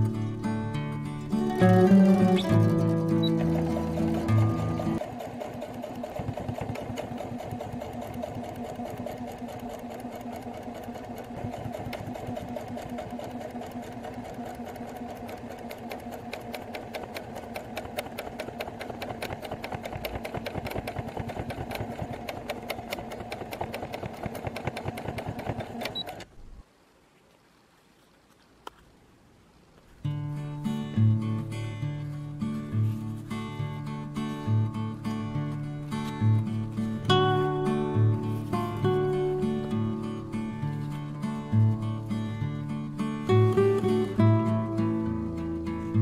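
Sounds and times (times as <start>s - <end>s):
sewing machine stitching: 1.4s - 26.3s.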